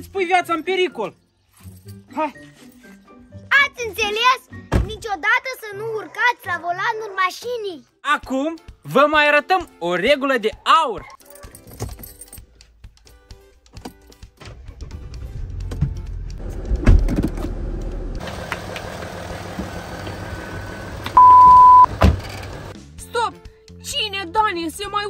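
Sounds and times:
car engine starting and idling: 0:14.4 - 0:22.8
thunks: 0:15.6 - 0:17.6, 0:21.8 - 0:22.6
electronic beep: 0:21.2 - 0:21.9.

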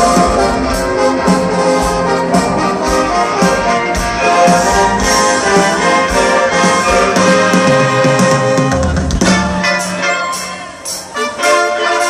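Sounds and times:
brass section melody: 0:00.0 - 0:12.0
orchestra and rock band playing: 0:00.0 - 0:12.0.

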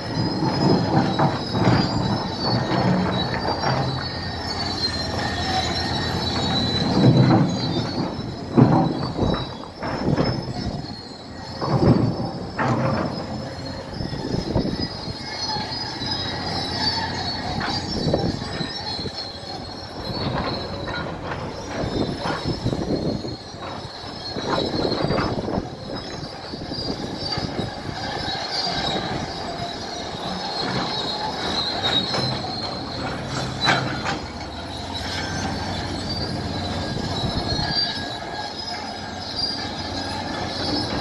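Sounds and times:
diesel engine under load: 0:00.0 - 0:41.0
steel tracks squealing and clanking: 0:00.0 - 0:41.0.

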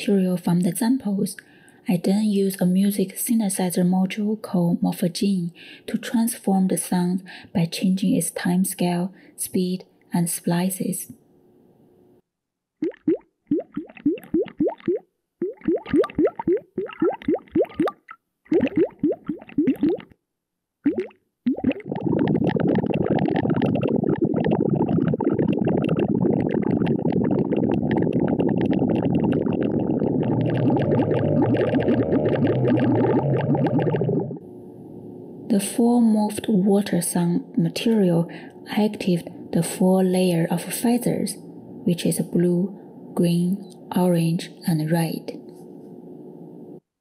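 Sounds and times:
muffled granular bubbling: 0:12.8 - 0:20.2, 0:20.8 - 0:34.4
water plops: 0:12.8 - 0:20.2, 0:20.8 - 0:34.4.

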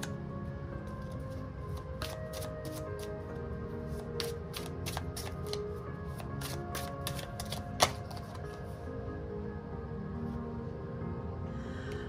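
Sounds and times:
soft background music: 0:00.0 - 0:12.0
cards being shuffled: 0:01.0 - 0:03.2, 0:03.9 - 0:08.8.

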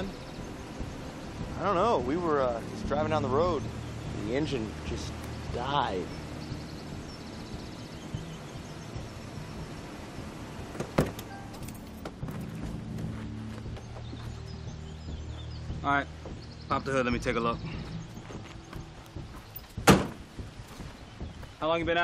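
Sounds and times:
film score low drone: 0:00.0 - 0:10.7
car door opening click: 0:10.7 - 0:11.8.

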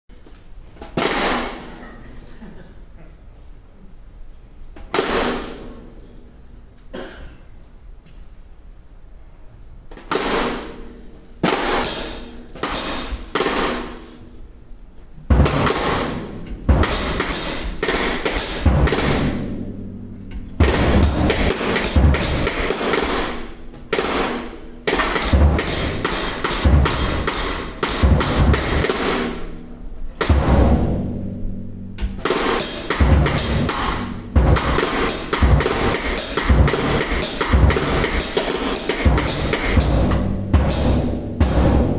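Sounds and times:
cymbal strikes: 0:15.3 - 0:41.9
heavy low drum hits: 0:15.3 - 0:41.9.

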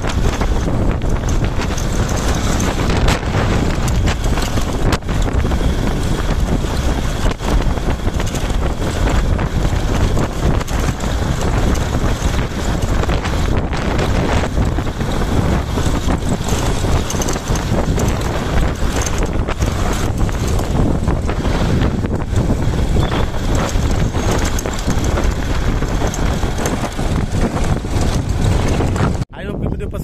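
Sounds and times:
wind rumble on microphone: 0:00.0 - 0:30.0.

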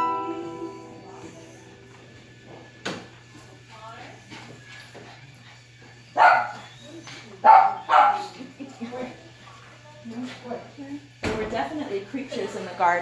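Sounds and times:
small dog barking: 0:06.2 - 0:06.7, 0:07.4 - 0:08.3.

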